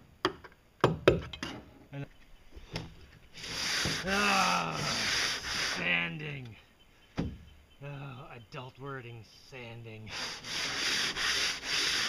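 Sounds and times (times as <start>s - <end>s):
hand sanding hull: 3.4s - 6.0s, 10.1s - 12.0s.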